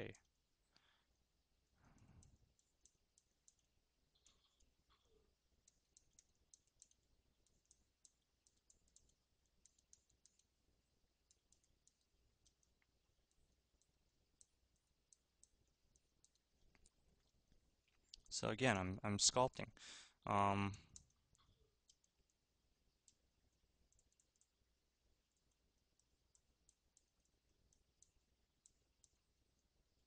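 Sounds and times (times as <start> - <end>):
computer mouse clicks: 1.8 - 10.6, 11.2 - 18.3, 20.6 - 30.0.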